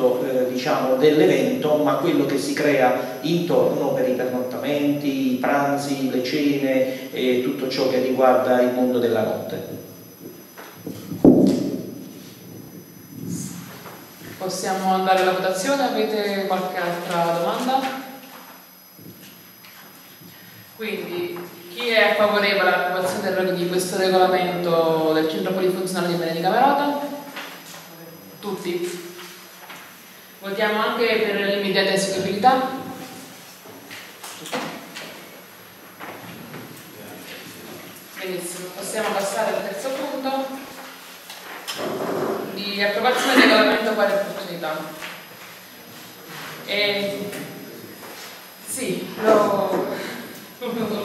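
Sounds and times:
loud microphone thump: 10.2 - 13.6, 41.8 - 42.6
microphone handling knocks: 10.2 - 13.6, 41.8 - 42.6
knocks or bumps: 10.8 - 11.9.

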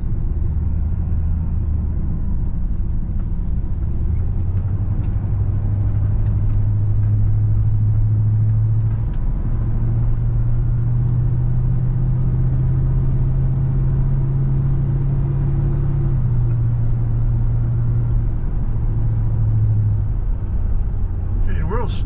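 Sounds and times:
car engine and tyre drone: 0.0 - 22.0.

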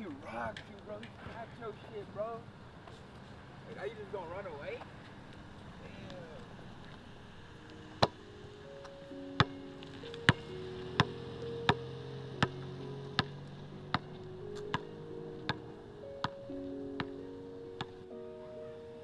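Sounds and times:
soft sustained music chords: 3.8 - 19.0
basketball bouncing on pavement: 8.0 - 8.2, 9.3 - 18.0.

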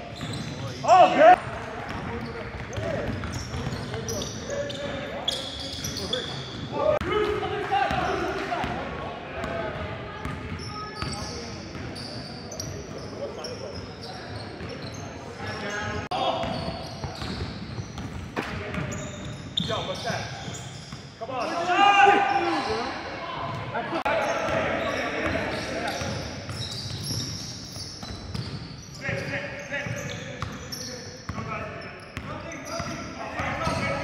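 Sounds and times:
sneakers squeaking: 0.0 - 8.8, 9.4 - 34.0
players calling out: 0.2 - 1.5.

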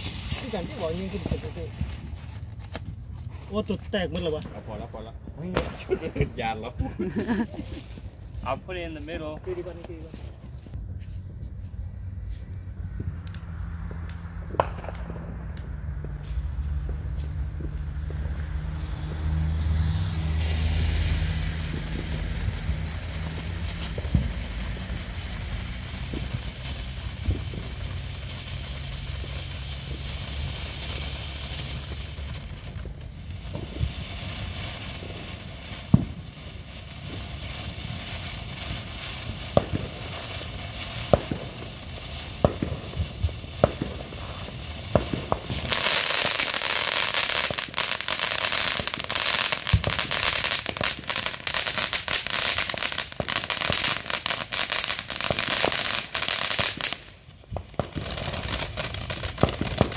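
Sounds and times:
fireworks fountain hissing: 0.0 - 10.8, 12.8 - 59.9
dense crackling fireworks: 0.0 - 59.9.

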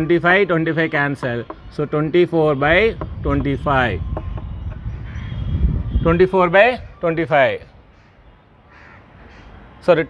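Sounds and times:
man's voice: 0.0 - 4.1.

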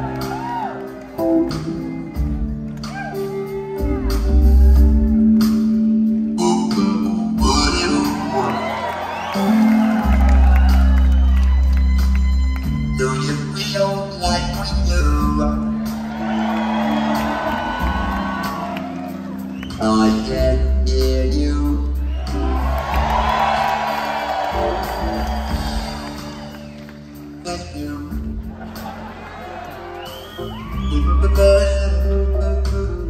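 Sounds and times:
audience cheering: 0.0 - 5.3, 7.4 - 20.7, 21.9 - 32.3
live rock band playing: 0.0 - 33.0.

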